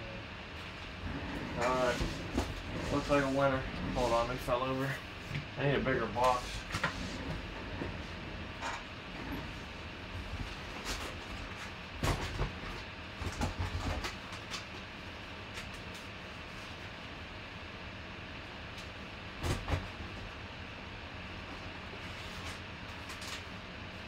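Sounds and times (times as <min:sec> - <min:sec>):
steady low hum: 0:00.0 - 0:24.0.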